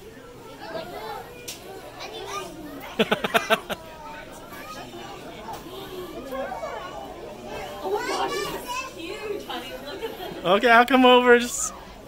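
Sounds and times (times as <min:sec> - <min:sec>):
indistinct chatter of children: 0:00.0 - 0:12.0
child's high voice: 0:07.9 - 0:09.2.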